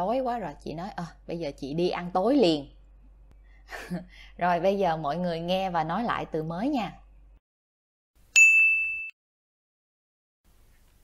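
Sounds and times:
bright ding chime: 8.4 - 9.2.

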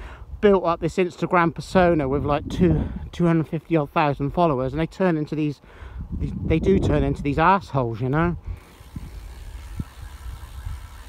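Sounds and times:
wind and road noise rumble: 0.0 - 11.0.

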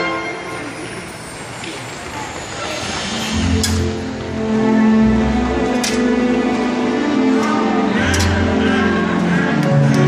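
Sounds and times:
murmur of crowd chatter: 0.0 - 10.0.

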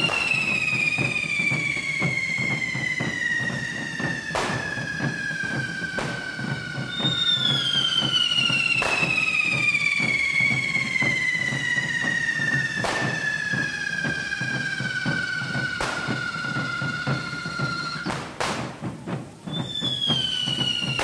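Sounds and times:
firework bangs: 0.0 - 21.0
fireworks whistling: 0.0 - 21.0
low rhythmic beat: 0.0 - 21.0.

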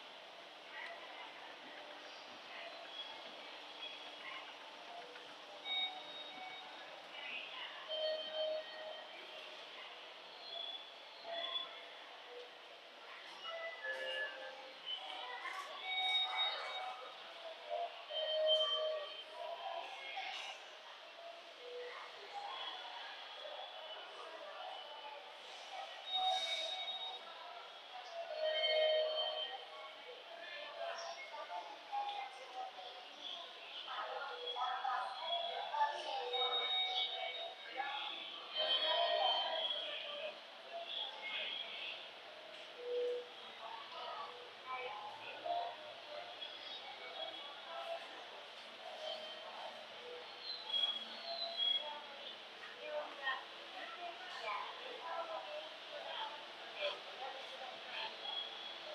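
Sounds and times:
public address announcements: 0.0 - 58.9.

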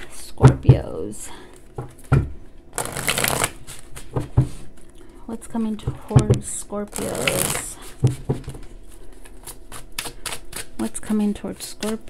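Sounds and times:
cards riffling: 2.8 - 4.2, 6.9 - 7.9, 8.5 - 10.8.

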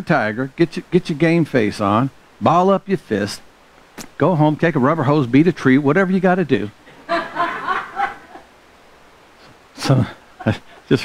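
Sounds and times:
person chuckling: 9.8 - 11.0.

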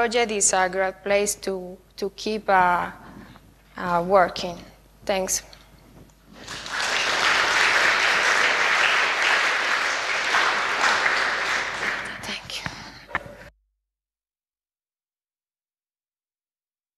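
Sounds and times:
audience applauding: 6.3 - 12.3.

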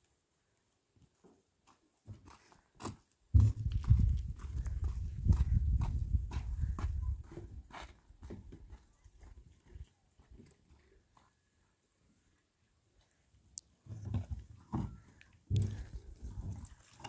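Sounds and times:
footsteps on stony ground: 1.6 - 11.5.

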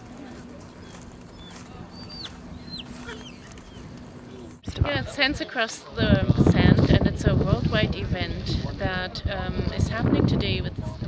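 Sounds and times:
outdoor background noise: 0.0 - 11.0
steady low hum: 0.0 - 11.0.

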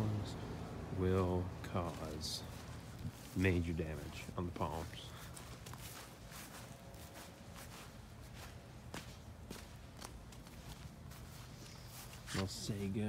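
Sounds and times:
footsteps crunching on snowy grass: 0.0 - 13.0.

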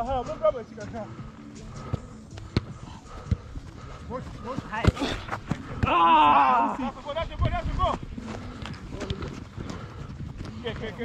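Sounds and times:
running footsteps on grass: 7.0 - 11.0.

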